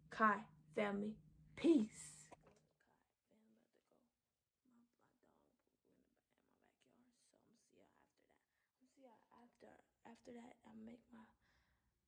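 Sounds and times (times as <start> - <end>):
faint whispered speech: 1.9 - 11.4.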